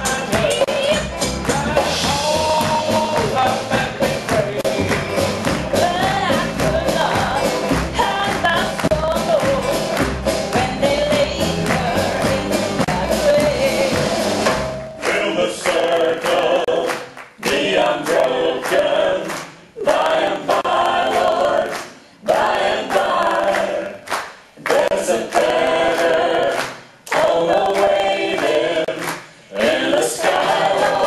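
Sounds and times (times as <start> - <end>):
voices singing in harmony: 0.0 - 5.1, 15.0 - 31.0.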